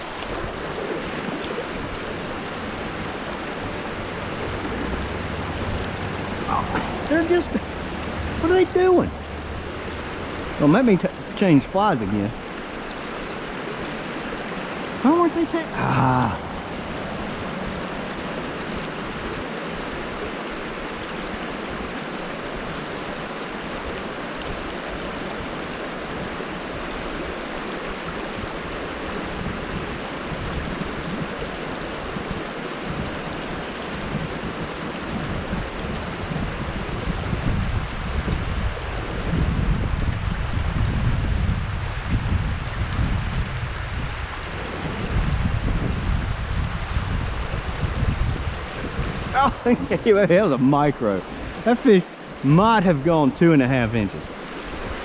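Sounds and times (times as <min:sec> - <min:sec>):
creek water running over stones: 0:00.0 - 0:55.0
uneven low rumble: 0:04.1 - 0:10.5.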